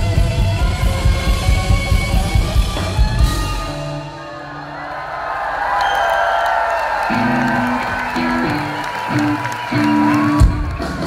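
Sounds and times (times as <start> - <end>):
drums: 0.0 - 4.8, 6.9 - 11.0
crowd cheering and whooping: 3.6 - 11.0.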